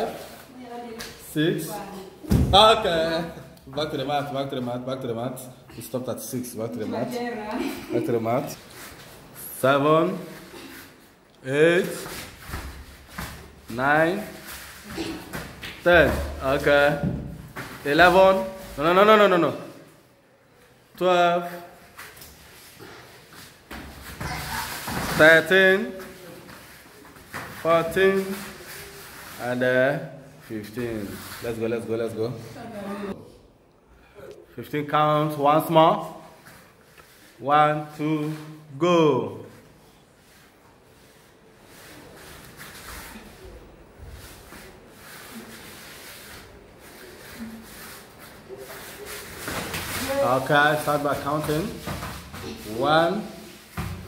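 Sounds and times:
wrestlers scuffling on a mat: 0:11.8 - 0:16.4, 0:21.8 - 0:29.4, 0:39.5 - 0:54.0.

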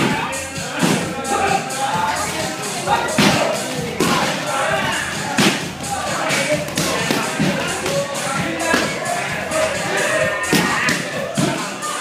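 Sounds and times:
background music: 0:00.0 - 0:12.0
background voices: 0:00.0 - 0:12.0
strikes on pads: 0:05.3 - 0:08.1.

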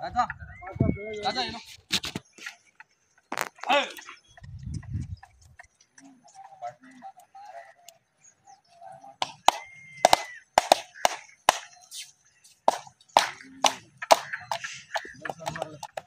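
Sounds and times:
whistle-like tone: 0:00.4 - 0:01.4.

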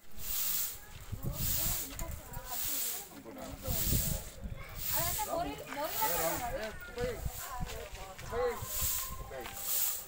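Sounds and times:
broom sweeping dirt road: 0:00.0 - 0:10.0
people talking: 0:00.5 - 0:10.0.

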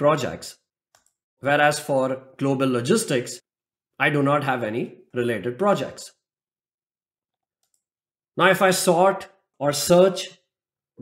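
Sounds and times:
computer mouse clicks: 0:00.9 - 0:01.3, 0:07.4 - 0:08.0.

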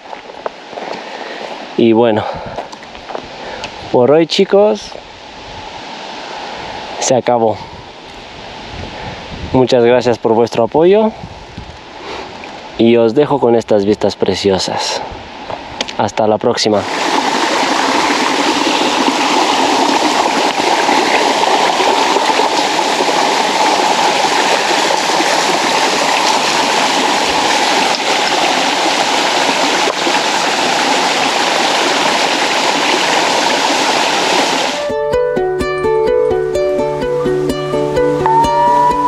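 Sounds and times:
small waterfall splashing: 0:16.6 - 0:34.9.

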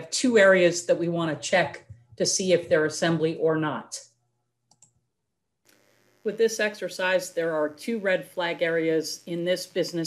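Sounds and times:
computer mouse clicks: 0:04.7 - 0:04.9.

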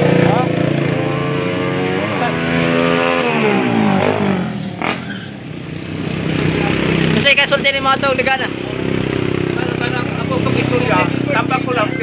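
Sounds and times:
motorcycle passing by: 0:00.0 - 0:12.0.

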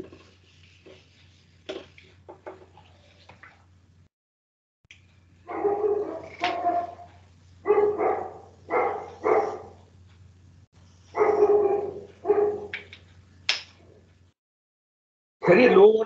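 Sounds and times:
dog barking: 0:05.4 - 0:09.8, 0:11.1 - 0:12.7.

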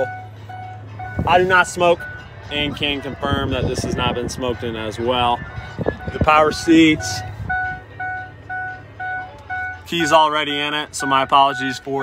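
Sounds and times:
car warning chime dinging: 0:00.0 - 0:12.0.

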